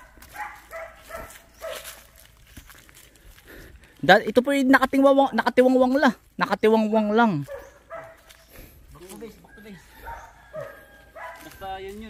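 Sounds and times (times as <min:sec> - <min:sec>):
men talking quietly: 0:08.8 - 0:12.0.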